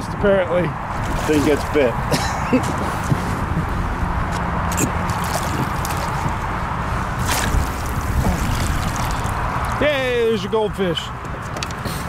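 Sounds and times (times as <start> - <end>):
water splashing and sloshing: 0.8 - 10.2
water pouring off net: 5.0 - 6.3, 7.2 - 9.8
sharp splash-like hit: 7.2 - 9.3.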